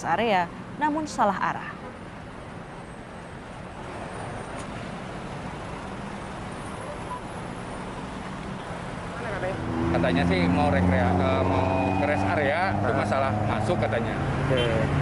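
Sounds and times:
road traffic noise: 0.0 - 15.0.

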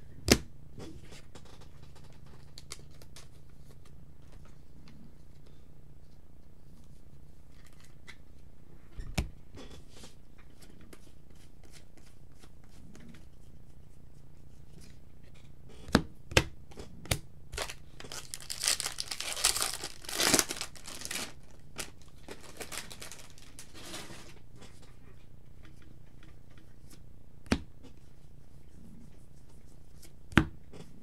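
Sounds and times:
foil wrapper tearing and crinkling: 17.6 - 24.0.

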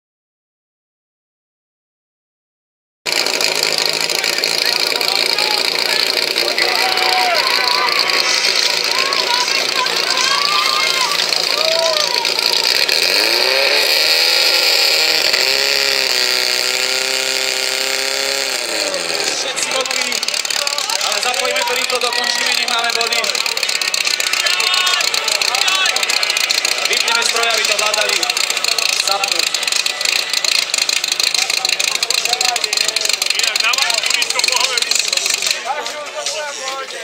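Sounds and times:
pump engine starting and revving: 3.1 - 37.0
people shouting: 4.2 - 13.8, 18.8 - 34.8.

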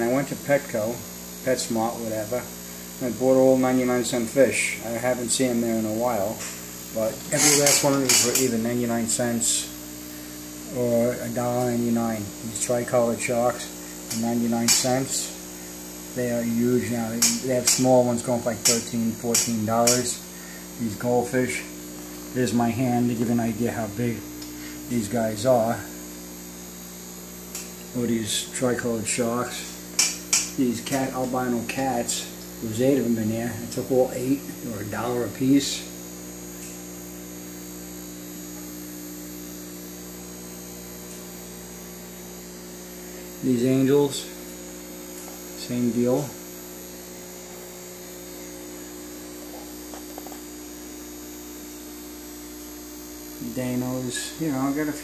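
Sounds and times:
aquarium pump humming: 0.0 - 55.0.

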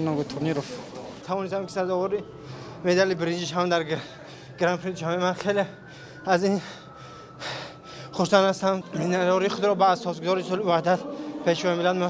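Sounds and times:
man speaking: 0.0 - 6.7, 8.2 - 12.0
sharp intake of breath: 2.3 - 2.8, 4.0 - 4.6, 5.9 - 8.2.

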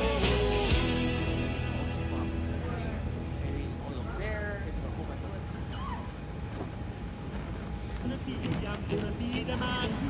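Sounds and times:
low rumbling noise: 0.8 - 10.0.

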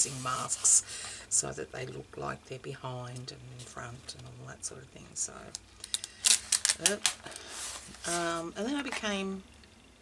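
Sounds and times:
stiff pages being turned: 5.8 - 8.3.

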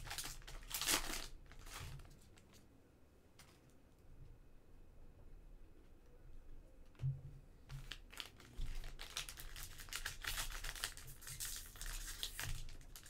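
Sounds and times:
foil wrapper crinkling and tearing: 0.0 - 2.5, 7.8 - 13.0.

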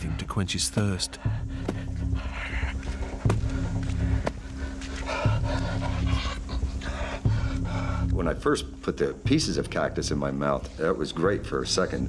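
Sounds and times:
low music drone with dull hits: 0.0 - 12.0
man panting heavily: 1.2 - 8.2.

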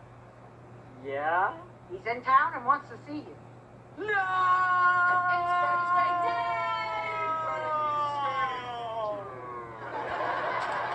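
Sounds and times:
man wailing through tv speaker: 4.0 - 9.8.

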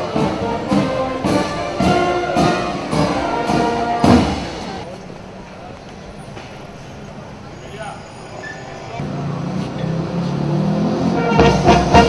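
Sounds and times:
band music: 0.0 - 4.9, 11.1 - 12.0
drum beats: 0.0 - 4.9, 11.2 - 12.0
faint voices: 0.0 - 9.8.

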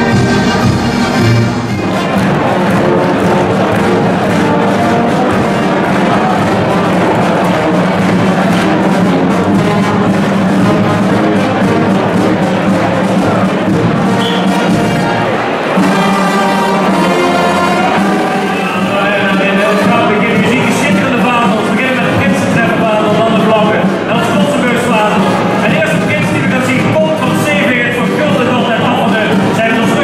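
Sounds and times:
bass drum: 0.0 - 30.0
brass band playing: 0.0 - 30.0.

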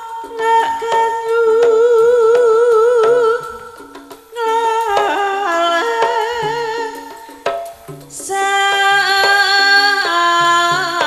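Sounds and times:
gamelan accompaniment: 0.0 - 10.9.

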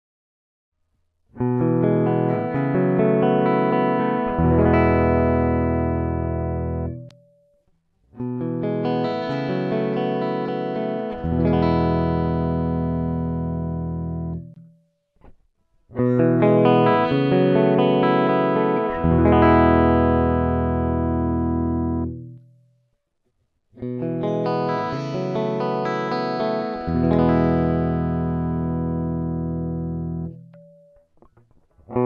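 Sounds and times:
clean electric guitar: 1.4 - 7.4, 8.1 - 15.3, 15.9 - 22.6, 23.8 - 32.0.

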